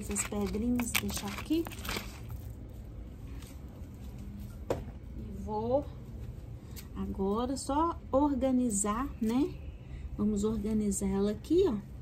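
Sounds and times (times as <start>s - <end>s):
pebbles dropping on soil: 0.0s - 2.6s.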